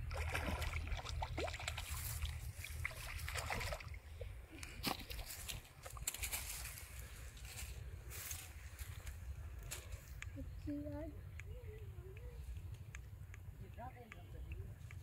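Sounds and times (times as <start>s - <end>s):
fish splashing in water: 0.0s - 4.1s.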